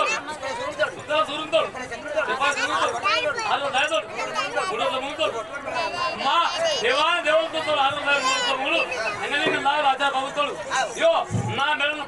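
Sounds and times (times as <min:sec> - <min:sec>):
crowd chatter: 0:00.0 - 0:12.0
man speaking through microphone: 0:00.0 - 0:12.0.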